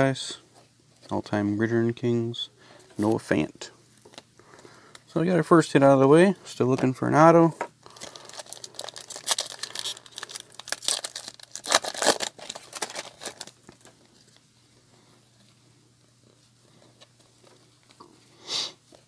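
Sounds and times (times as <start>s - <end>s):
foil wrapper tearing and crinkling: 7.9s - 13.9s.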